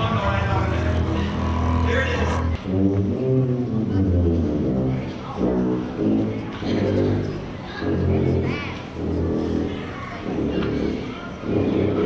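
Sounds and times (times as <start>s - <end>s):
double bass low notes: 0.0s - 12.0s
tuba low notes: 0.0s - 12.0s.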